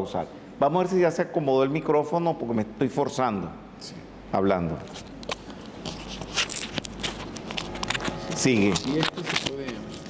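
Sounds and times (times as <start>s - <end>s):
lapel microphone handling noise: 4.8s - 10.0s.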